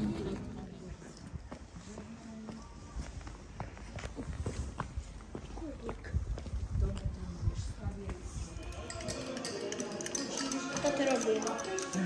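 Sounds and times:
faint voices of passers-by: 0.0s - 12.0s.

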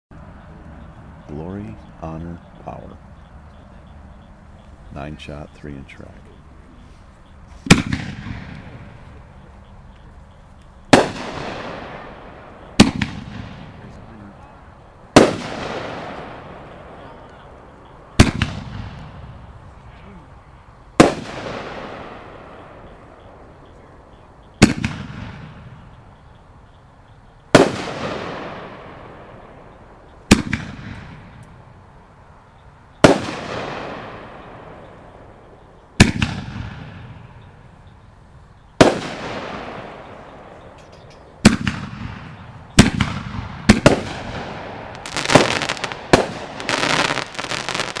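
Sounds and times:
firework shells bursting: 7.5s - 9.2s, 10.8s - 14.0s, 15.1s - 17.0s, 21.0s - 23.1s, 38.8s - 48.0s.

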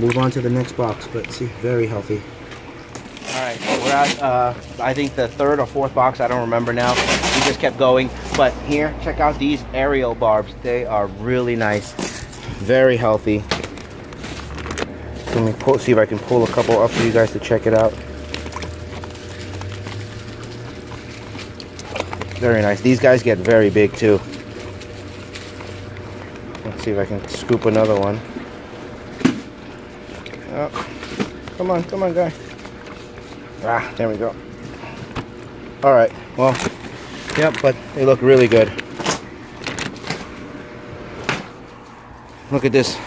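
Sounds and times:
steady low hum: 0.0s - 43.0s
plastic bag crinkling: 2.7s - 40.6s
water splashing: 12.2s - 33.7s.

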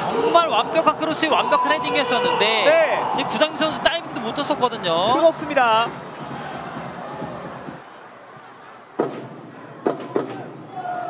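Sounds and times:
stadium ambience: 0.0s - 11.0s.

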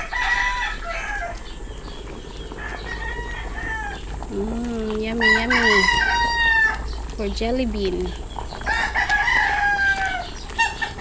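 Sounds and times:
rooster crowing: 0.0s - 1.4s, 2.6s - 4.0s, 5.2s - 6.8s, 8.6s - 10.8s.

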